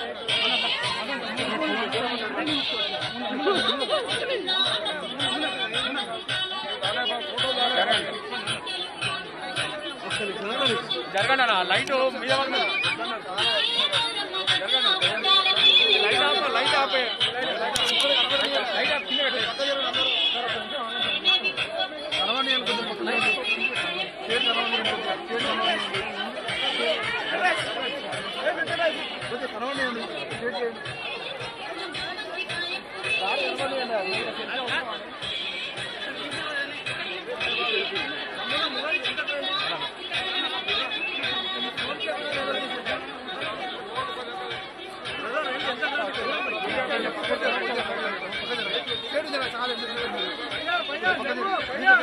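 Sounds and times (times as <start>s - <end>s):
dense crowd chatter: 0.0s - 52.0s.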